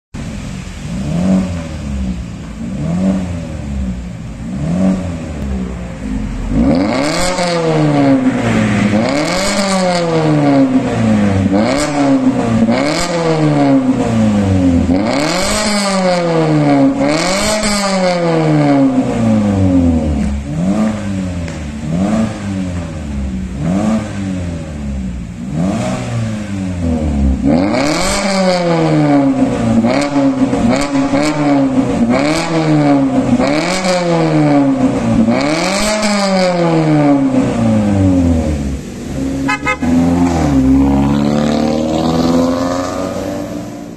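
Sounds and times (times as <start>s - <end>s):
car engine revving through exhaust: 0.2s - 43.9s.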